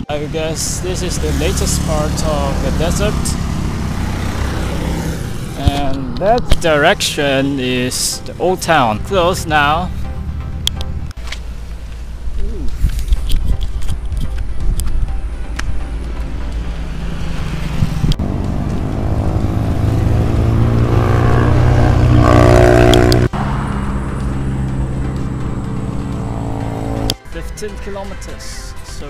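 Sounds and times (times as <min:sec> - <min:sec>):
vehicle engine approaching: 0:00.0 - 0:28.4
road traffic passing: 0:00.0 - 0:29.0
wind on microphone: 0:12.2 - 0:15.8.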